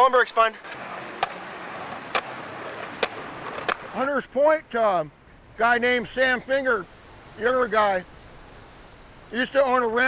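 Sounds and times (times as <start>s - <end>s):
skateboard wheels rolling on pavement: 0.0s - 10.0s
skateboard clacks: 0.6s - 4.0s.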